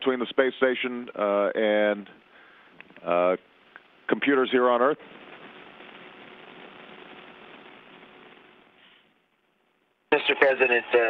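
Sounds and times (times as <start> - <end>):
faint steady hum: 0.0 - 11.0
radio link hiss: 0.0 - 11.0.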